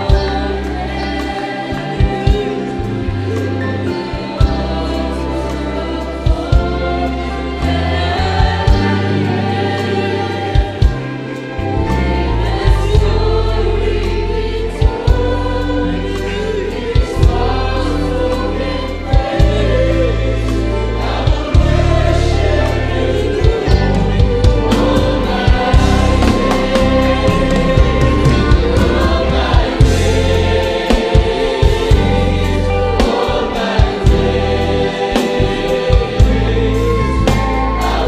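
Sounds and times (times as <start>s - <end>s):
choir singing a gospel song: 0.0s - 38.0s
drum kit: 0.0s - 38.0s
keyboard: 0.0s - 38.0s
deep sustained bass notes: 17.2s - 38.0s.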